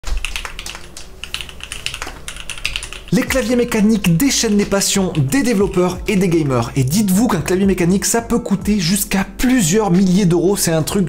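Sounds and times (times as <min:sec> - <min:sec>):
mechanical keyboard typing: 0:00.0 - 0:06.6.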